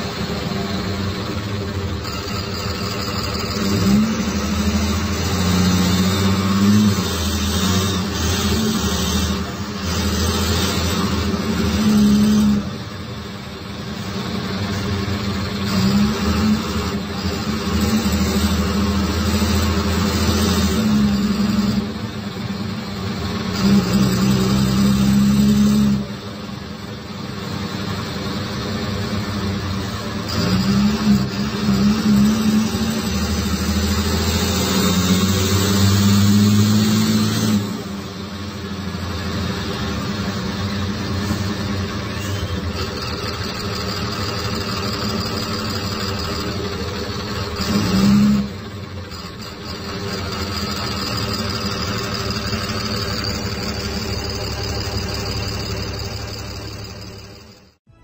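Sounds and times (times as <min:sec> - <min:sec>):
diesel bus engine pulling: 0:00.0 - 0:58.0
turbo whine: 0:00.0 - 0:58.0.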